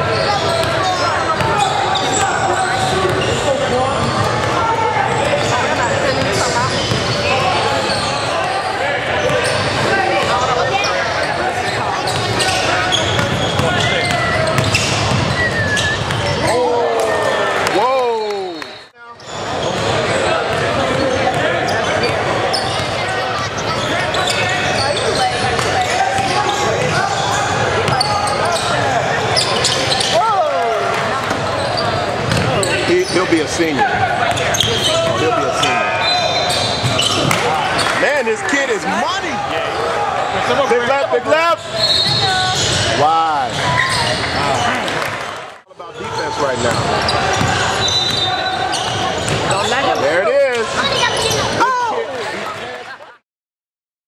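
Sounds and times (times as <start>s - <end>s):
crowd voices and shouts echoing: 0.0s - 53.2s
basketball bouncing on court: 0.1s - 8.0s, 12.0s - 16.4s, 31.2s - 32.6s, 46.7s - 49.6s.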